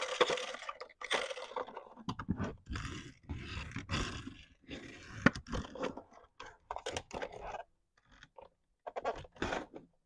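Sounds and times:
plastic toy rubbing and scraping: 0:00.0 - 0:10.0.

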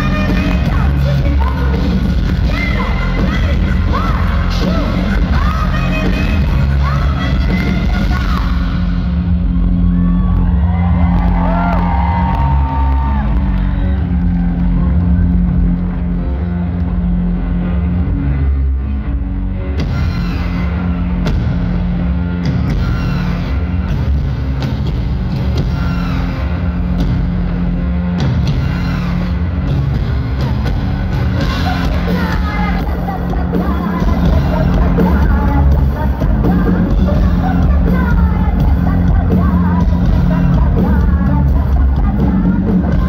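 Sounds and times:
heavy bass line: 0:00.0 - 0:43.0
live industrial rock band: 0:00.0 - 0:43.0.

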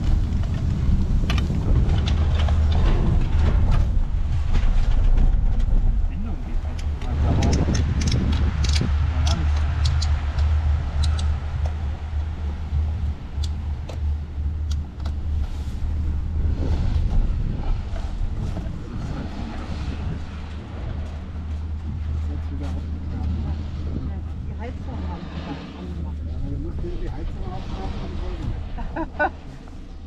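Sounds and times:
chairlift rumble: 0:00.0 - 0:30.0.

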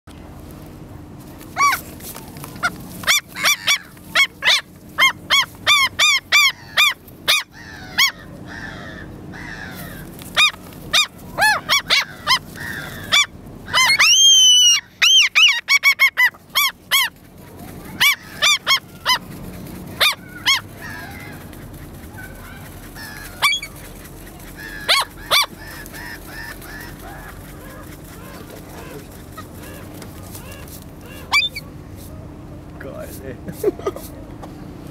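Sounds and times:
gulls calling: 0:01.5 - 0:31.9.

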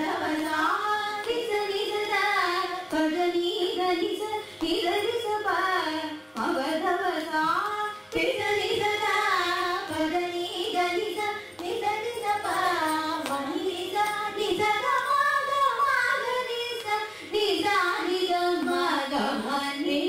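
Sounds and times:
women singing: 0:00.0 - 0:20.0.

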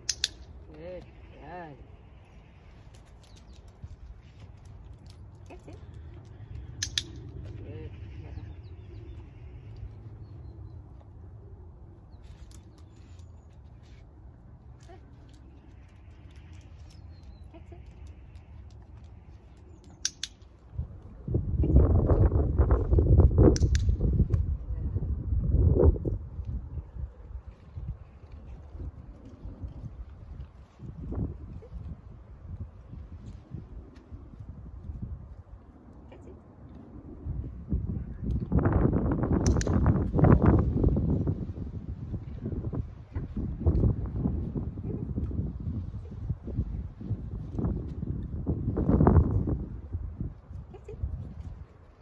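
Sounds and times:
sharp clicks: 0:00.0 - 0:00.6, 0:04.6 - 0:07.4, 0:15.3 - 0:20.6, 0:23.5 - 0:24.4, 0:39.4 - 0:40.0
wind rumble on microphone: 0:00.0 - 0:52.0.

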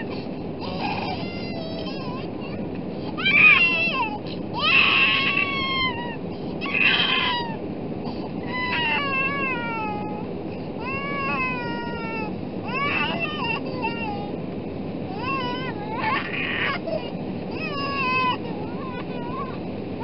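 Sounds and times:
infant crying: 0:00.0 - 0:07.6, 0:08.4 - 0:10.2, 0:10.8 - 0:14.3, 0:15.1 - 0:19.6
jet cabin rumble: 0:00.0 - 0:20.0.

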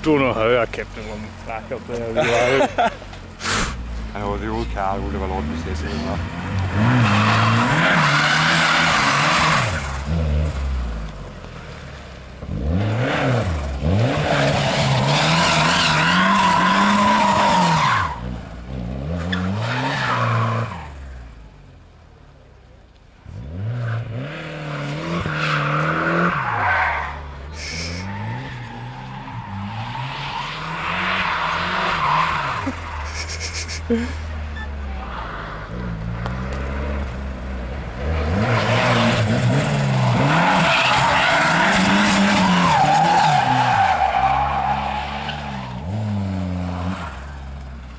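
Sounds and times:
car engine revving: 0:00.0 - 0:21.9, 0:23.2 - 0:47.9
tyres squealing: 0:25.3 - 0:35.5, 0:38.4 - 0:45.7.

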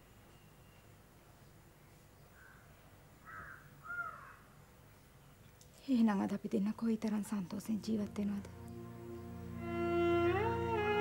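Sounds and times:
crow cawing: 0:03.2 - 0:04.5.

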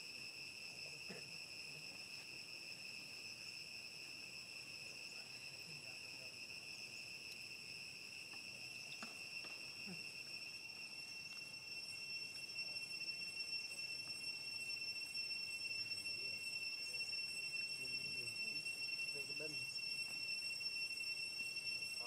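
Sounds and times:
insects droning: 0:00.0 - 0:22.0.

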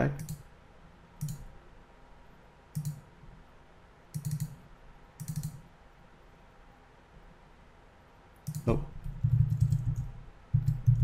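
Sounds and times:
computer mouse clicks: 0:00.2 - 0:00.5, 0:01.2 - 0:01.5, 0:02.7 - 0:03.0, 0:04.1 - 0:04.6, 0:05.2 - 0:05.6, 0:08.4 - 0:11.0.

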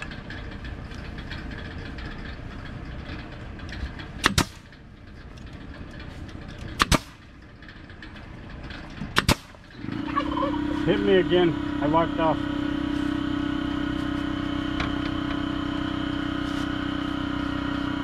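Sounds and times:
pneumatic stapler firing: 0:04.2 - 0:04.7, 0:06.8 - 0:07.2, 0:09.2 - 0:09.6.

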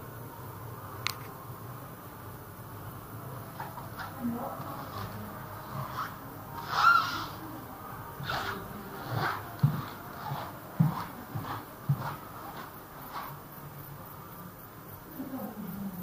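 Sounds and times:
footsteps on hard floor: 0:08.2 - 0:13.4.

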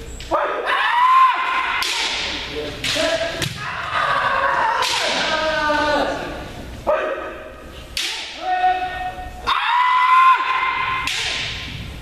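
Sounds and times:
people shouting: 0:00.3 - 0:11.7.

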